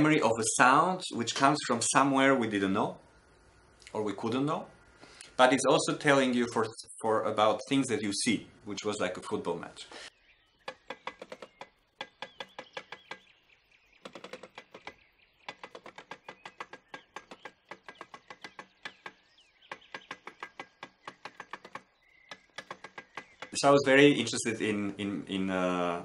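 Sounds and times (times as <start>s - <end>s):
rapid mechanical clicking: 10.6s - 13.3s, 14.0s - 24.4s.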